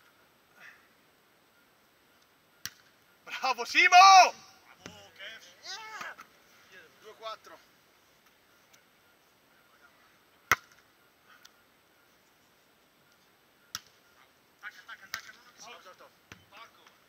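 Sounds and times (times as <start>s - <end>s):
volleyball hit by hand: 10.5s - 10.8s.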